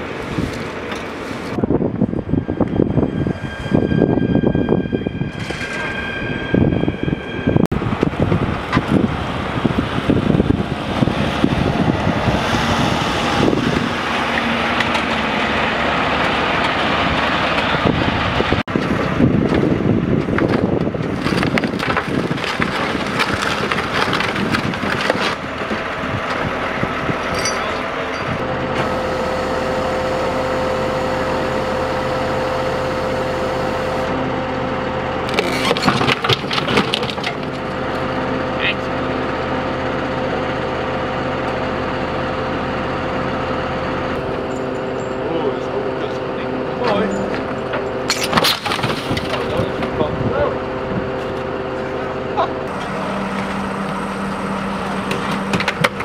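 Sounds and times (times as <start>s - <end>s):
road vehicle noise: 0.0s - 56.0s
tow truck engine humming: 6.0s - 21.2s, 22.2s - 56.0s.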